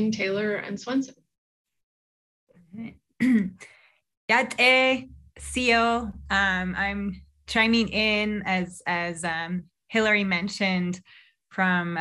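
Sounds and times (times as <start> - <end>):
woman speaking: 0.0 - 1.2, 4.3 - 12.0
woman clearing throat: 3.2 - 3.6.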